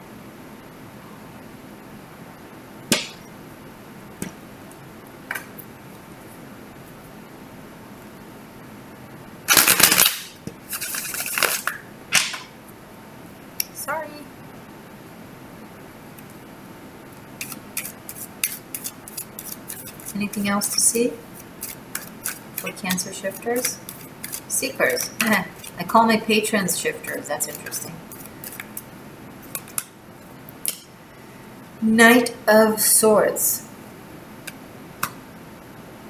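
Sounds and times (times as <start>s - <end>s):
cards being shuffled: 9.5s - 11.8s, 21.4s - 25.8s, 27.1s - 28.9s.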